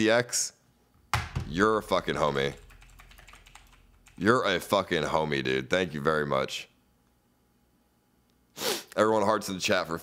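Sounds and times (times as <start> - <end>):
person sneezing: 8.6 - 8.9.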